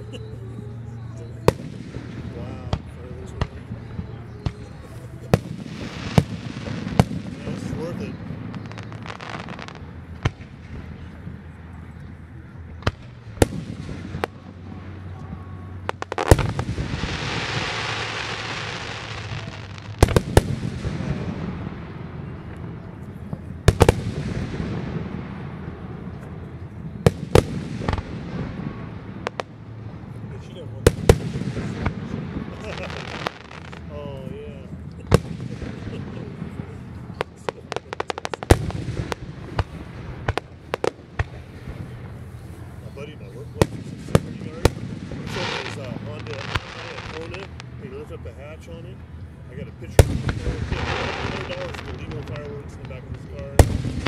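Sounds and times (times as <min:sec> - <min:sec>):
fireworks bursting with booms: 0:00.0 - 0:47.8, 0:49.7 - 0:54.0.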